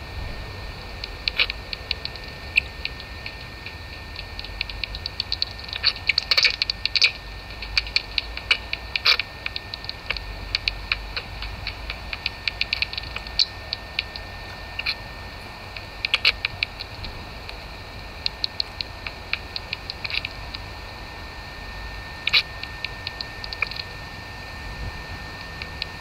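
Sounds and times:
low steady hum: 0.0s - 26.0s
bat detector clicks: 1.0s - 21.4s, 22.0s - 24.1s.

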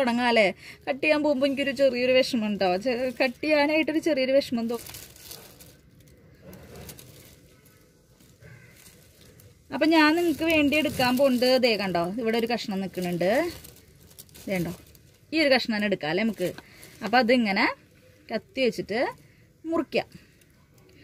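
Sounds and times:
woman speaking: 0.0s - 5.0s, 9.7s - 13.7s, 14.4s - 20.2s
faint handling noise: 1.2s - 19.2s.

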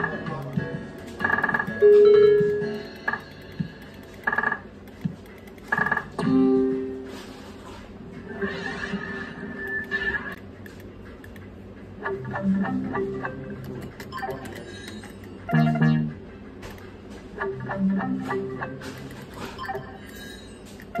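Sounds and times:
slot machine chiming bleeps: 0.0s - 4.6s, 14.0s - 16.2s, 19.5s - 21.0s
loud held electronic tone: 0.0s - 4.7s, 15.4s - 16.2s
slot machine jingle: 0.0s - 4.7s, 13.9s - 16.2s.

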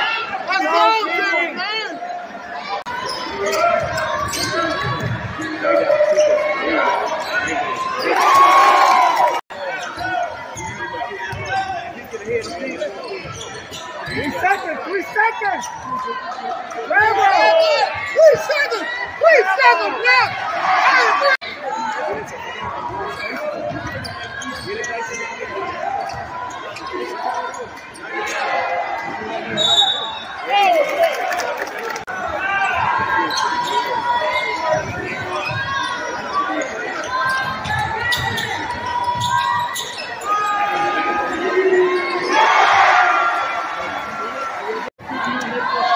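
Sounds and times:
crowd shouts: 0.0s - 12.8s, 13.9s - 45.9s
crowd chatter: 0.0s - 45.9s.

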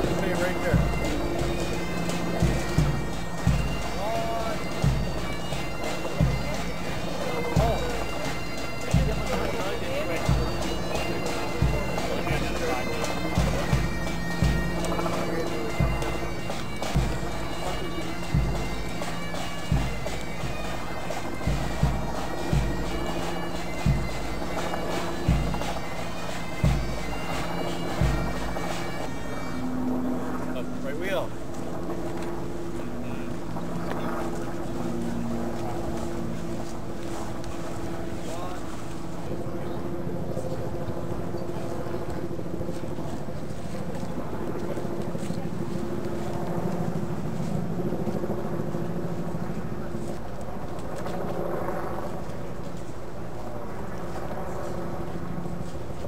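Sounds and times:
bagpipes playing a march: 0.0s - 56.0s.

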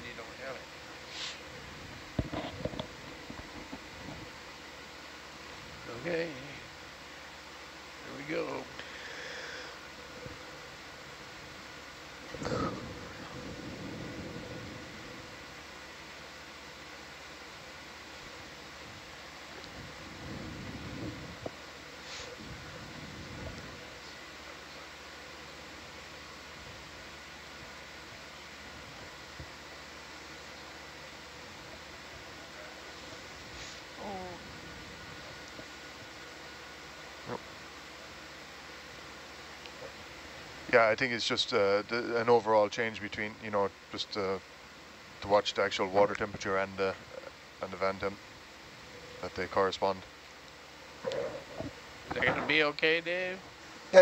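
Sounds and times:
ventilation fans hissing: 0.0s - 54.0s.

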